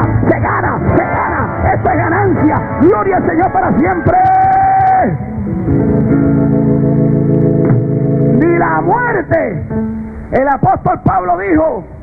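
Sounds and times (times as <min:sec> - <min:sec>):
live worship band music: 0:00.0 - 0:12.0.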